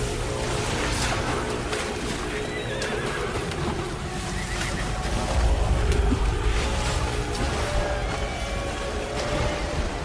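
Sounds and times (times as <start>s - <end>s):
film background score: 0.0s - 10.0s
horse neighing: 2.2s - 5.0s.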